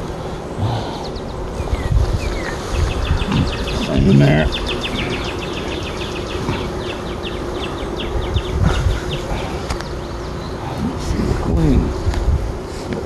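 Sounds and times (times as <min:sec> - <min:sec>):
honeybees buzzing: 0:00.0 - 0:13.0
wind rumble on microphone: 0:00.0 - 0:13.0.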